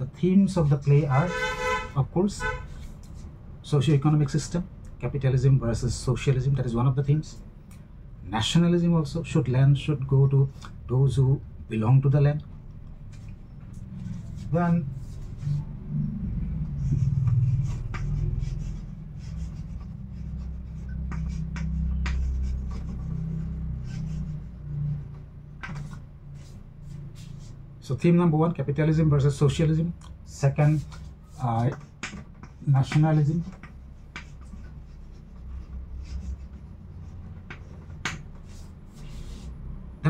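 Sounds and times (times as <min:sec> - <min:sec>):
steady low hum: 0:00.0 - 0:40.0
chalk scratching on chalkboard: 0:00.6 - 0:03.4, 0:13.1 - 0:27.6, 0:30.5 - 0:39.8
chalk tapping: 0:16.6 - 0:27.6, 0:30.6 - 0:39.6.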